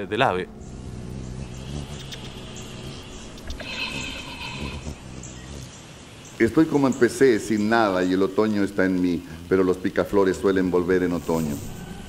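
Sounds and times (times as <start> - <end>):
low hum: 0.0 - 7.7
hummingbird chirping: 0.1 - 12.0.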